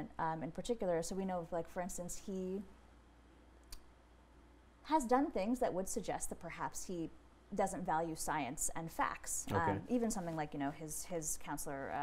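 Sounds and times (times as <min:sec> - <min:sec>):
woman's voice: 0:00.0 - 0:02.7, 0:04.9 - 0:12.0.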